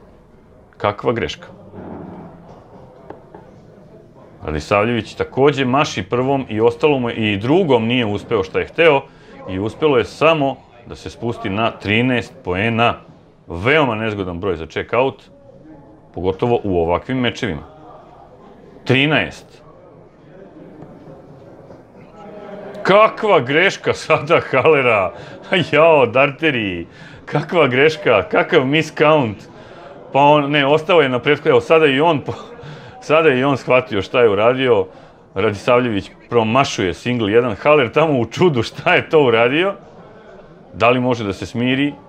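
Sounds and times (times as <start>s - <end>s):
low room noise: 0.0s - 42.0s
murmur of voices: 0.0s - 42.0s.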